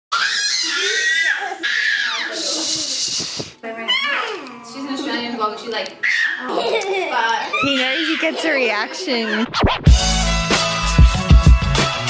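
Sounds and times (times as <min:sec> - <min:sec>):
baby squealing: 0:00.1 - 0:04.5, 0:06.0 - 0:09.7.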